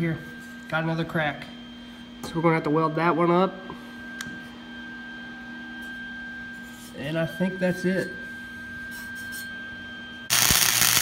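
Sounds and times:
welding machine hum: 10.3 - 11.0.

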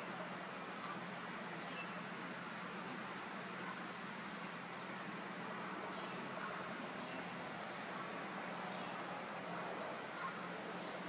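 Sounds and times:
insects chorus drone: 0.0 - 11.0.

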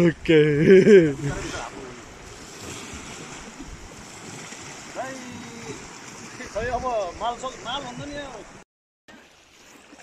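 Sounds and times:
small waves lapping at shore: 0.0 - 10.0
man laughing: 0.5 - 1.5
wind on microphone: 1.1 - 8.5.

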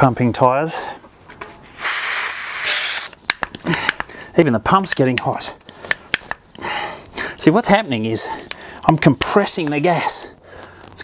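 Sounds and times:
air hissing from tyre valve: 1.6 - 3.2.

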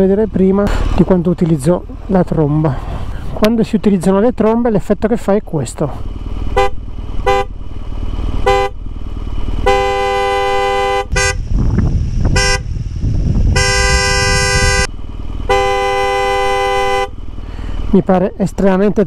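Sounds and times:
wind and engine rumble: 0.0 - 19.0
motorcycle horns tooting: 6.4 - 7.6, 8.4 - 8.9, 9.6 - 11.6, 12.2 - 17.2.

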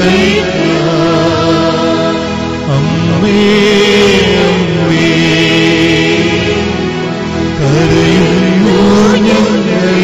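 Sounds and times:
sustained accompaniment: 0.0 - 10.0
person chant-style singing: 7.6 - 10.0.

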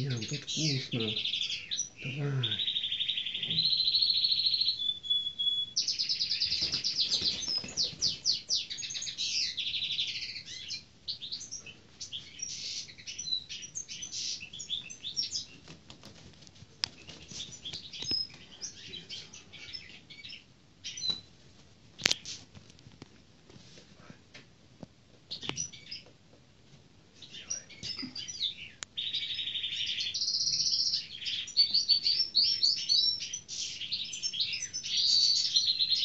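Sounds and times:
wings flapping: 6.5 - 8.3.

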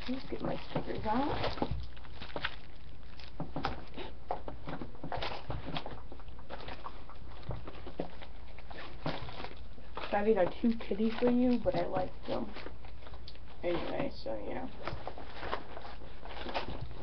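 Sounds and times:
plastic sleeves rustling and crinkling: 0.0 - 17.0.

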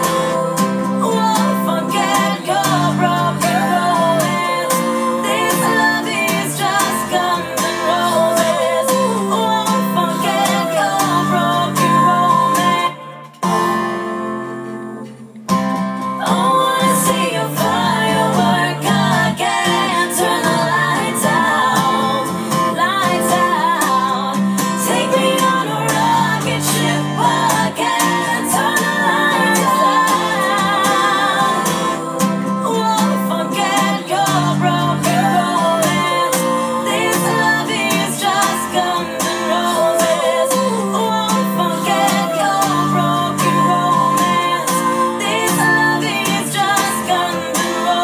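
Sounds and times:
acoustic guitar song with singing: 0.0 - 48.0.

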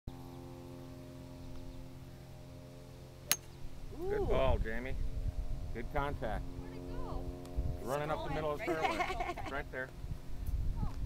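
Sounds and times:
golf driver striking ball: 3.2 - 3.6.

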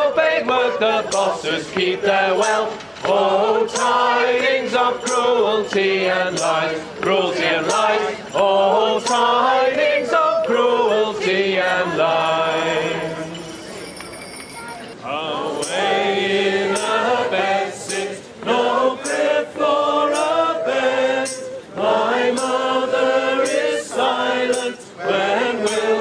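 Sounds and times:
group singing carols: 0.0 - 13.5, 15.0 - 26.0.

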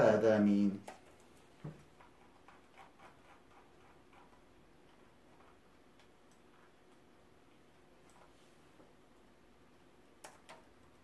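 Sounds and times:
computer keyboard and mouse clicking: 10.2 - 11.0.

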